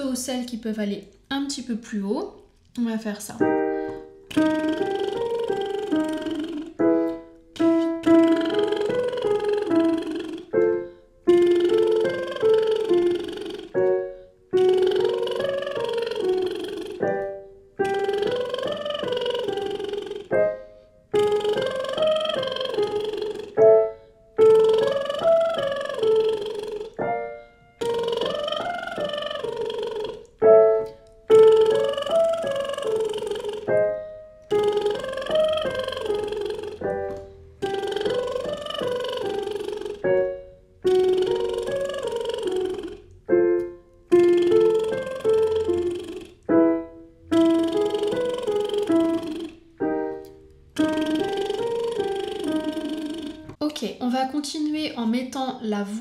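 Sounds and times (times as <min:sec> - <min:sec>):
piano notes: 0:03.2 - 0:53.6
woman doing lip trills: 0:03.8 - 0:53.6.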